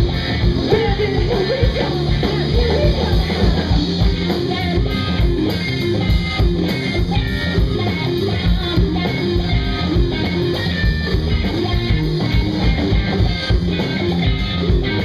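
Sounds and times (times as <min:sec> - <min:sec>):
rock band playing loudly: 0:00.0 - 0:15.0.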